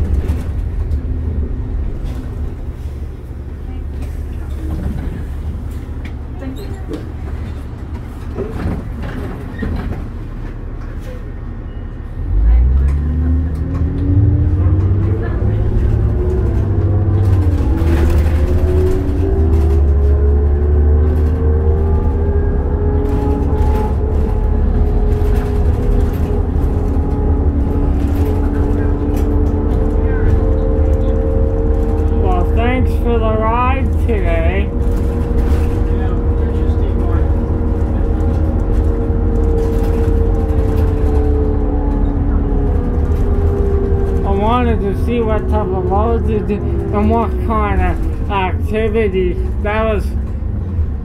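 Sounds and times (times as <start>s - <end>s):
bus engine rumbling and revving: 0.0s - 51.0s
bus whine climbing in pitch: 8.4s - 51.0s.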